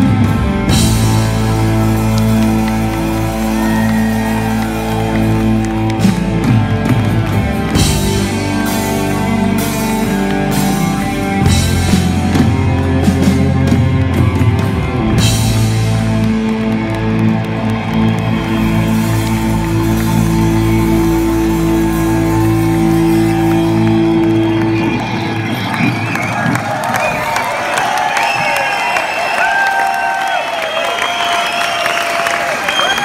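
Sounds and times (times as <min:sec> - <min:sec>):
rock band sustained chord: 0:00.0 - 0:25.5
audience cheering and applauding: 0:00.0 - 0:33.0.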